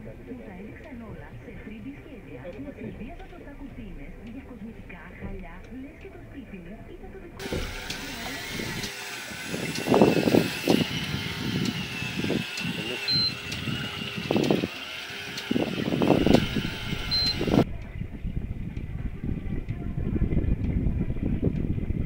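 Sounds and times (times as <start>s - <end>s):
loud low bursts: 1.2s - 22.0s
fishing reel motor whine: 7.4s - 17.7s.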